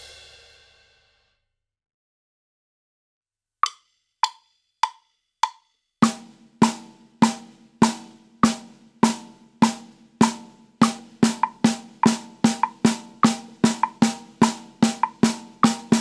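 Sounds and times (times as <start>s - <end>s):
snare drum hits: 6.0s - 16.0s
sharp count-in clicks: 11.4s - 14.0s, 14.8s - 16.0s.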